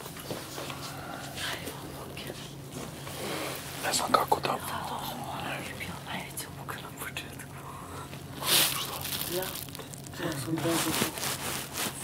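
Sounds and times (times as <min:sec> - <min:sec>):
low steady hum: 0:00.0 - 0:12.0
people whispering: 0:03.8 - 0:09.6.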